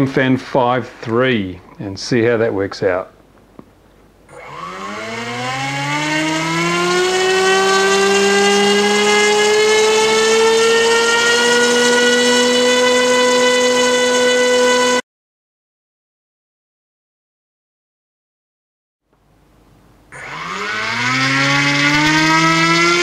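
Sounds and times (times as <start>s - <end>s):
small drone motor whining: 4.3s - 15.0s, 20.2s - 23.0s.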